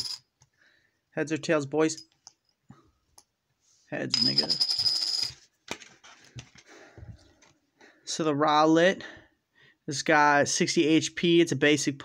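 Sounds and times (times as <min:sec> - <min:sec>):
coin rattling on tabletop: 0:00.0 - 0:00.2, 0:04.1 - 0:05.4.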